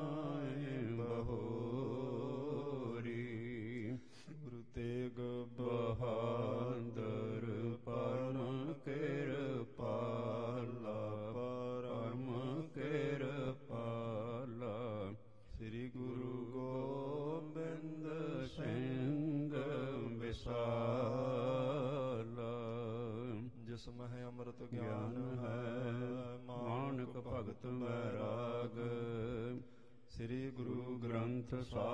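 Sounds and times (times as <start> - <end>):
man chanting: 0.0 - 31.9.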